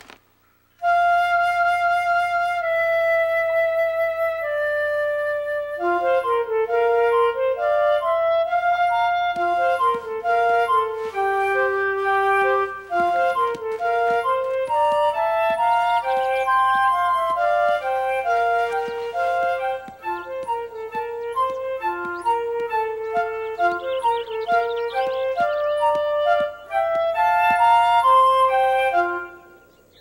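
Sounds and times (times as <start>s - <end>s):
flute-like woodwind melody: 0.8s - 30.0s.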